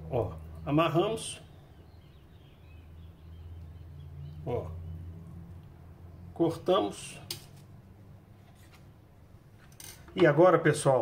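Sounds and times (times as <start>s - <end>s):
low steady hum: 0.0s - 10.5s.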